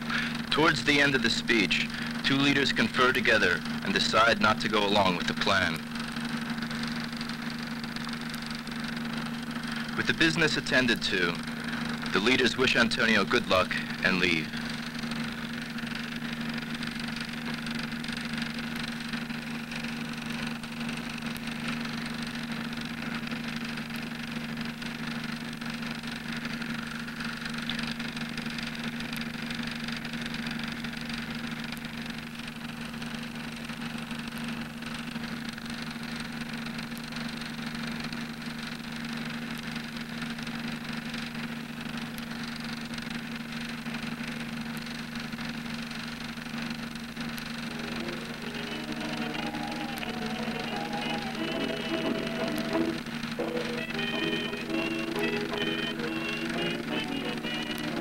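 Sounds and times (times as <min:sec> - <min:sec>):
low mechanical hum: 0:00.0 - 0:58.0
even hiss: 0:47.6 - 0:58.0.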